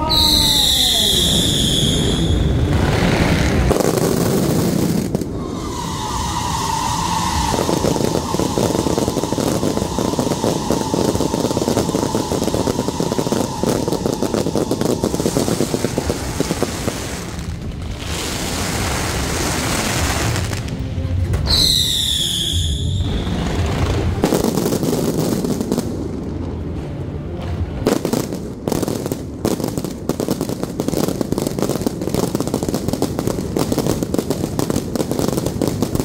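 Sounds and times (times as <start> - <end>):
firework whistles: 0.0 - 20.6, 21.4 - 25.8
fireworks crackling: 0.0 - 36.0.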